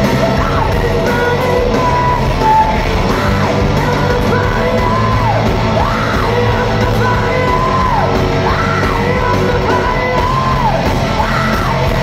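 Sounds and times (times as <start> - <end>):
drums: 0.0 - 12.0
heavy guitar: 0.0 - 12.0
rock band playing live: 0.0 - 12.0.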